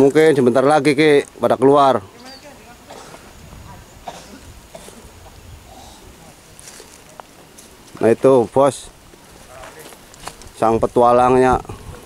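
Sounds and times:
faint distant voices: 0:00.0 - 0:12.0
low wind rumble: 0:02.0 - 0:06.6
stones shifting underfoot: 0:06.5 - 0:10.8.

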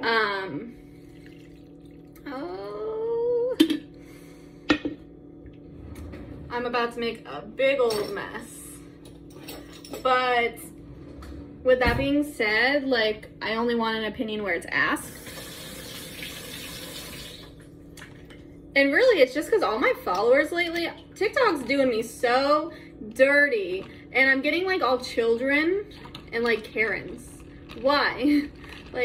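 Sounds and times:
coffee pouring into jar of ice: 0:25.9 - 0:29.0.

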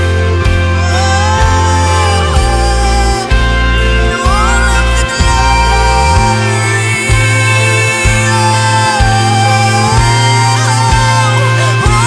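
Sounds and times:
low bass: 0:00.0 - 0:12.0.

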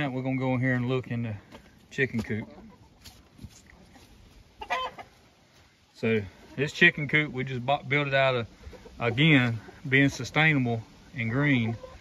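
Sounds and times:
chicken clucking: 0:00.2 - 0:12.0.

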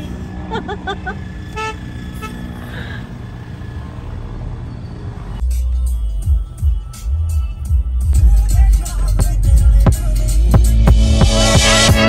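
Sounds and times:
car engine and road rumble: 0:00.0 - 0:12.0
vehicle horn toot: 0:01.5 - 0:02.7
loud music with heavy bass beat: 0:05.4 - 0:12.0.

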